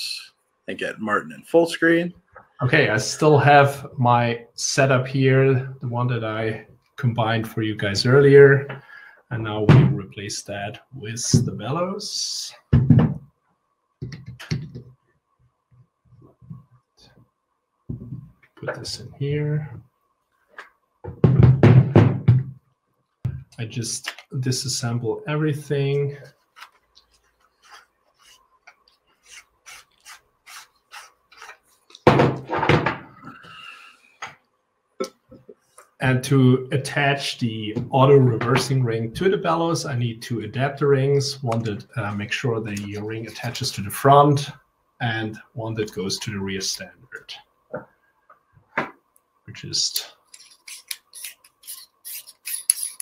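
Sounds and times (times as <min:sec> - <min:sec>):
metal rings scraping: 0:50.3 - 0:53.0.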